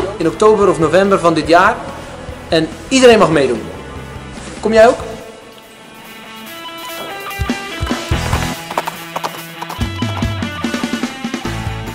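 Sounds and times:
guitar music: 5.4 - 11.9
horse hooves clip-clopping: 7.0 - 10.7.

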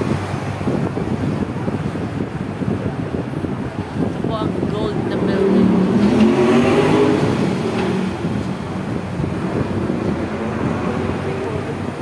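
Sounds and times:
street traffic: 0.0 - 12.0
wind: 0.0 - 12.0.

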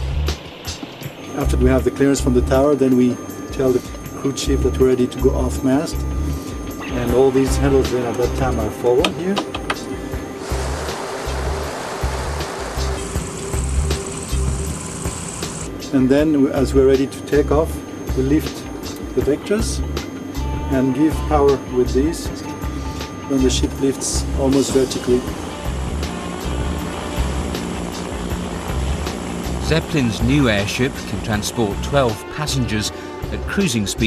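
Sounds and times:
music with steady low beat: 0.0 - 33.7
airship propellers and engines: 0.0 - 34.0.

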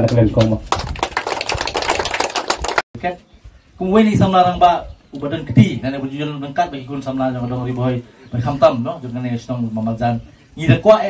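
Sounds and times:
audience applauding: 0.0 - 2.8.

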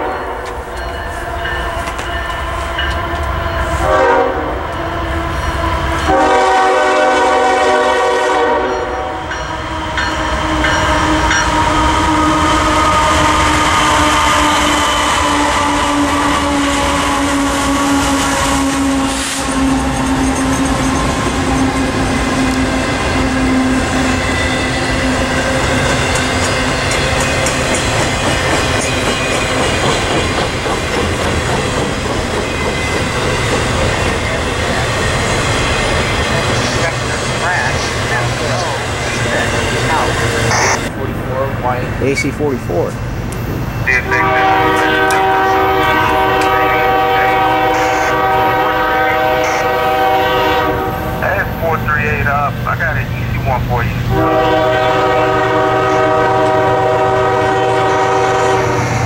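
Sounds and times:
train air horn: 0.0 - 0.5, 1.8 - 4.6, 5.5 - 20.3, 43.9 - 51.4, 54.0 - 59.0
train cars rumbling and clattering: 0.0 - 59.0
locomotive engines passing: 7.7 - 59.0.

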